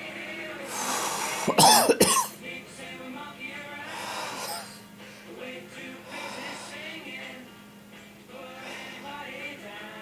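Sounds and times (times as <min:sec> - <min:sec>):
man coughing: 0:01.4 - 0:02.4.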